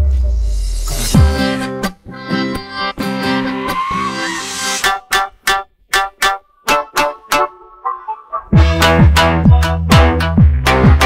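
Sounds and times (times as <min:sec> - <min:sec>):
plucked guitar over chords: 0:04.8 - 0:11.0.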